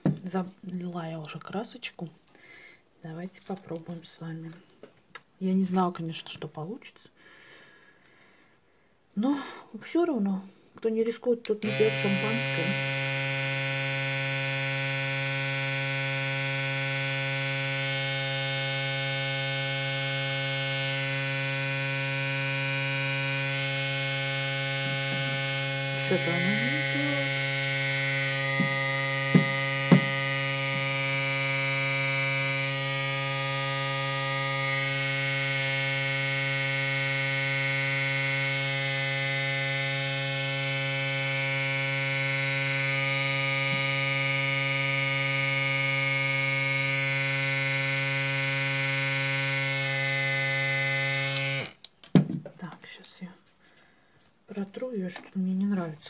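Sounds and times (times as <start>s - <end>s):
airbrush compressor humming: 11.6s - 51.8s.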